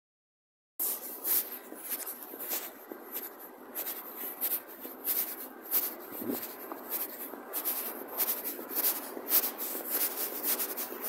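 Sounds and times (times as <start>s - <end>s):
footsteps on stone tiles: 0.8s - 11.0s.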